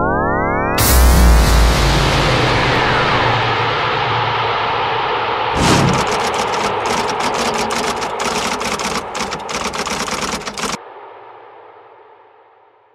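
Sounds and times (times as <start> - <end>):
typewriter keystroke clicks: 5.6 - 10.8.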